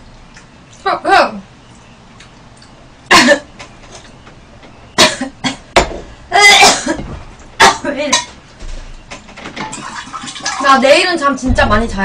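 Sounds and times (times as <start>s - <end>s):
woman coughing: 3.1s - 3.5s, 5.0s - 5.7s, 6.3s - 7.0s, 7.6s - 8.0s.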